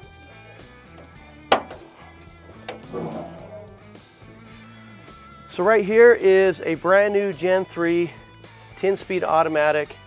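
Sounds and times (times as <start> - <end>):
background music: 0.0 - 10.0
hood knocking and rattling: 1.0 - 3.6
metal hood latch clunk: 1.0 - 3.7.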